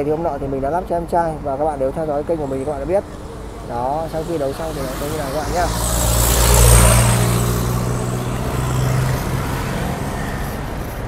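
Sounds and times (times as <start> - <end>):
road hiss: 1.2 - 11.0
vehicle engine running: 3.0 - 10.5.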